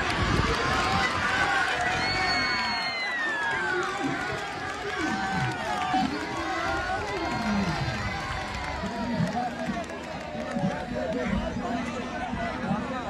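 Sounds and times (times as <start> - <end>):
crowd shouting and calling out: 0.0 - 13.0.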